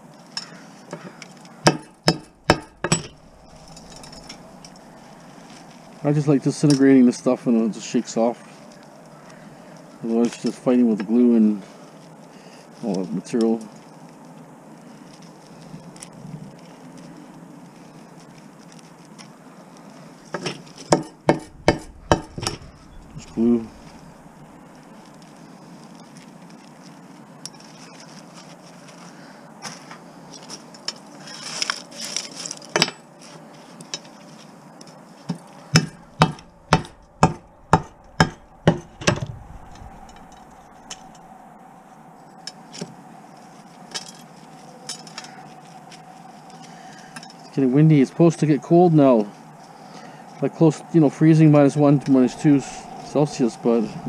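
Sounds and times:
hammer blows cracking ferrite: 0:01.6 - 0:05.0, 0:20.9 - 0:24.3, 0:35.7 - 0:41.3.

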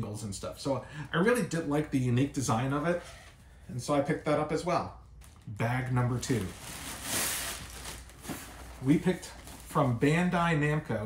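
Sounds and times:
shopping bag rustling: 0:06.0 - 0:10.0.

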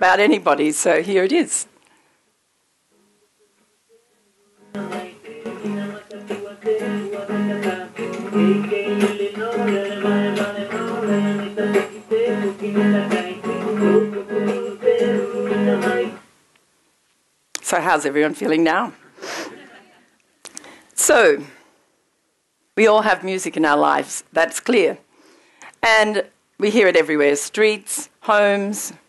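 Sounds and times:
person singing: 0:03.0 - 0:16.2
plucked string accompaniment: 0:04.7 - 0:16.2.

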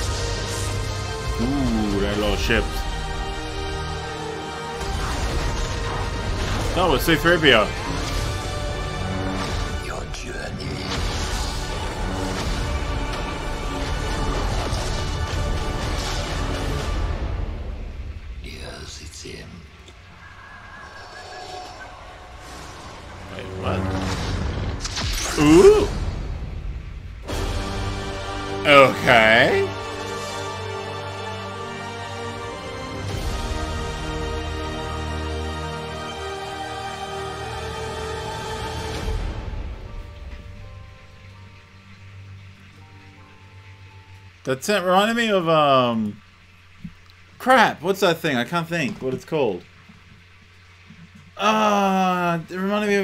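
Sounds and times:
film trailer music: 0:00.0 - 0:53.0.

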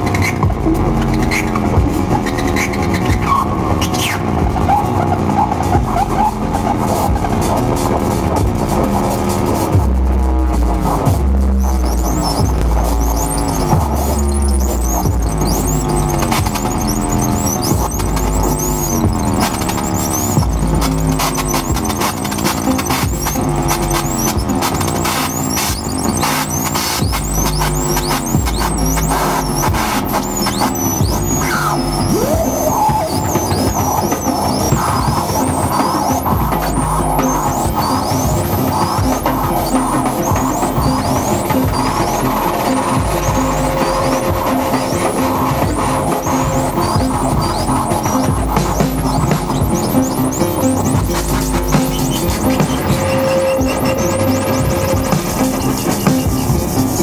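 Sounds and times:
deep bass: 0:00.0 - 0:57.0
falling synth tones: 0:00.0 - 0:57.0
high warbling tones: 0:00.0 - 0:57.0.

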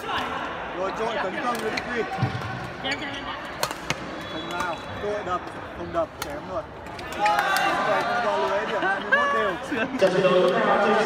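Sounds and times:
racket hitting shuttlecock: 0:03.6 - 0:04.7.

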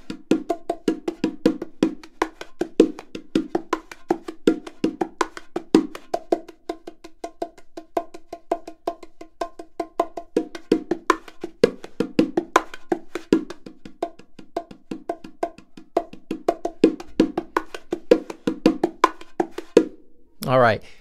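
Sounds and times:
bongos played by hand: 0:00.0 - 0:20.1.

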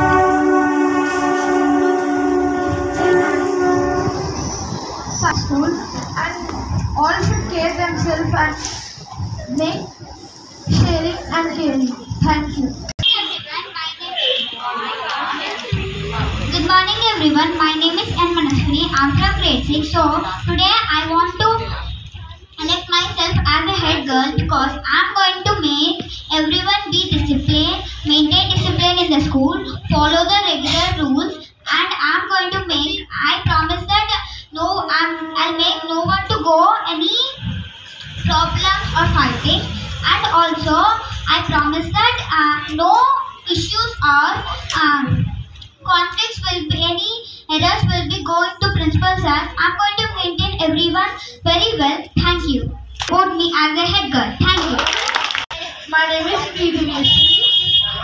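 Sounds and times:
two-tone horn blast: 0:00.0 - 0:05.2, 0:57.0 - 0:58.0
people speaking: 0:01.5 - 0:57.3.

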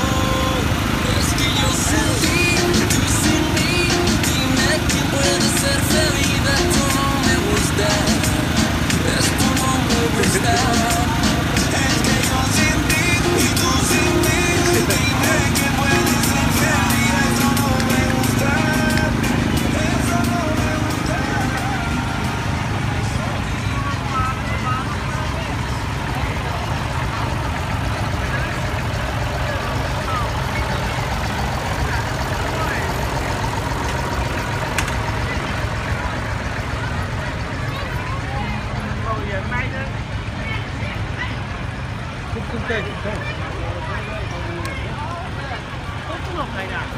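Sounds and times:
people talking: 0:00.0 - 0:46.9
tractor engine running: 0:00.0 - 0:46.9
music: 0:01.2 - 0:23.4.

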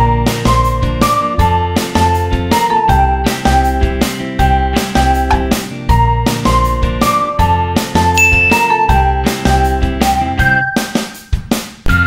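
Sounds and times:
bright chime ding: 0:08.2 - 0:09.1.

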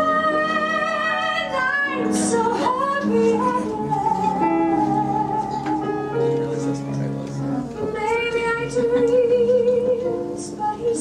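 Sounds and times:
woman singing: 0:00.0 - 0:06.3, 0:07.8 - 0:11.0
piano accompaniment: 0:00.0 - 0:11.0.

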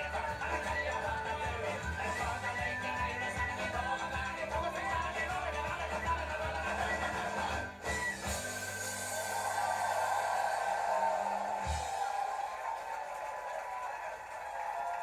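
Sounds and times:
folk band with guitars and banjo: 0:00.0 - 0:09.4
audience noise: 0:00.0 - 0:15.0.

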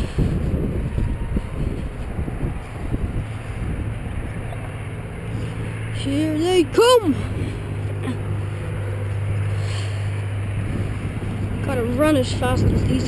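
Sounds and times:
low steady hum: 0:00.0 - 0:13.0
wind buffeting microphone: 0:00.0 - 0:13.0.

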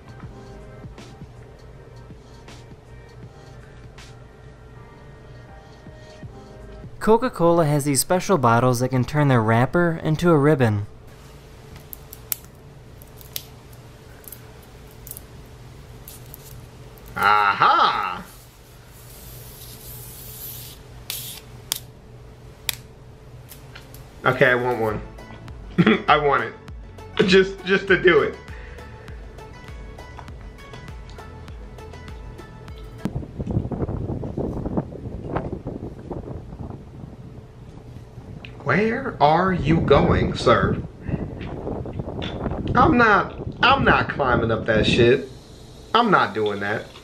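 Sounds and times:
soft background music: 0:00.0 - 0:11.1, 0:24.1 - 0:33.1
plastic label crinkling and tearing: 0:11.8 - 0:17.3
wind buffeting microphone: 0:33.1 - 0:38.5, 0:39.4 - 0:45.0.

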